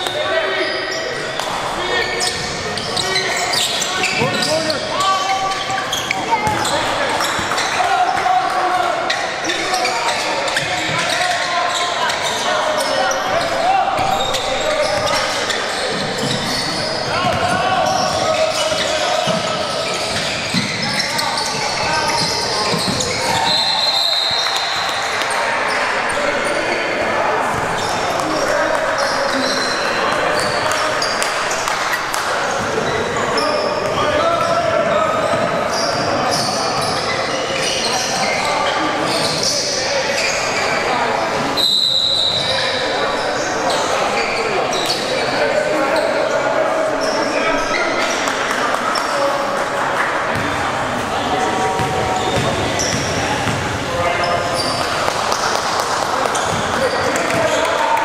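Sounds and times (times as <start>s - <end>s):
players shouting and chatter: 0.0s - 58.0s
basketball dribbling: 50.3s - 50.6s, 51.7s - 53.8s.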